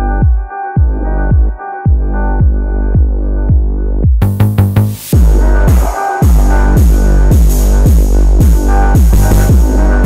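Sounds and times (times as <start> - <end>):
synth chords: 0.0 - 10.0
deep kick-bass hits: 0.1 - 10.0
sustained low bass note: 4.2 - 10.0.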